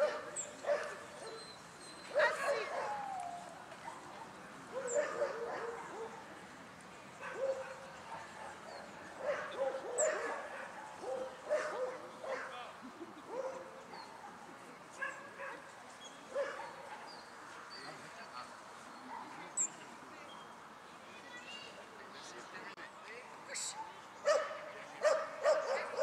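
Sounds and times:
dogs barking and yelping: 4.7 - 6.2, 9.2 - 12.5.

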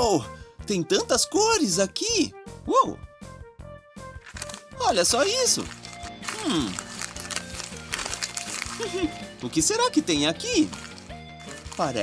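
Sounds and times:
light background music: 0.0 - 12.0
person speaking: 4.7 - 7.0, 11.6 - 12.0.

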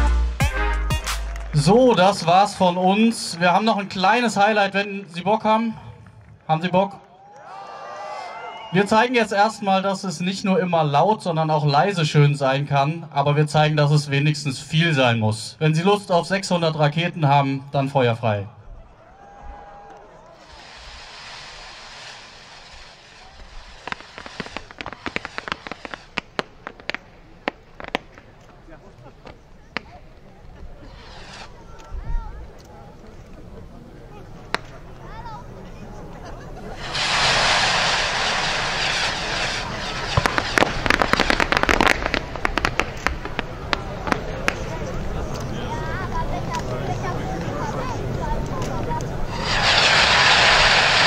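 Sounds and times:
crackling pops: 19.9 - 33.4, 34.4 - 35.1, 36.8 - 46.8
firework rockets launch hissing: 20.4 - 32.0, 36.6 - 45.5, 48.4 - 51.0
firework bursts popping: 20.4 - 32.6, 36.6 - 51.0.

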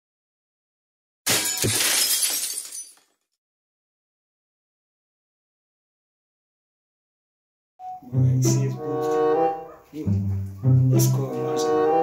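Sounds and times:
glass shards tinkling: 1.3 - 3.1
glass shattering: 1.3 - 3.2.

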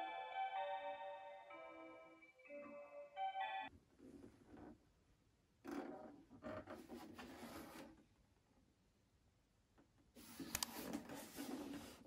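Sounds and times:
musical clock melody: 0.0 - 3.7.

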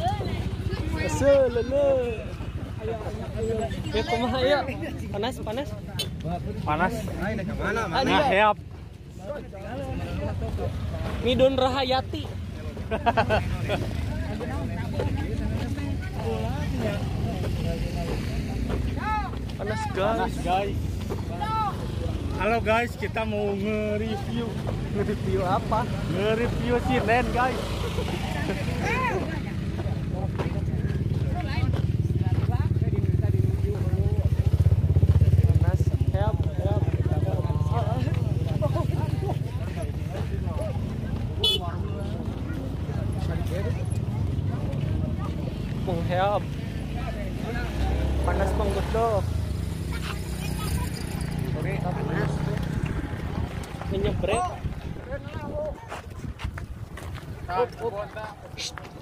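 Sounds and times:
people talking and calling out: 0.0 - 59.0.

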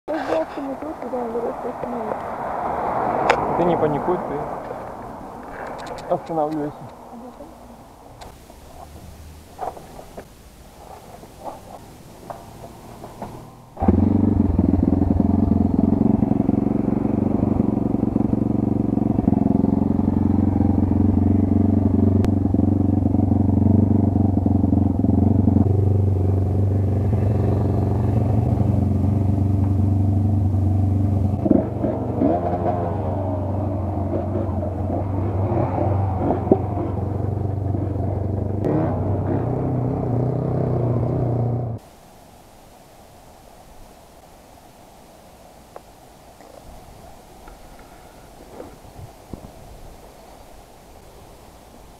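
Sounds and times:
motorbike engine running: 13.8 - 41.8.

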